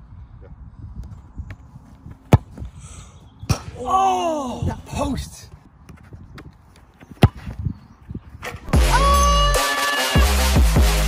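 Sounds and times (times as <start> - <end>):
taps and scuffs on turf: 1.0 - 2.8
football kicked with thud: 2.2 - 2.7, 7.1 - 7.7.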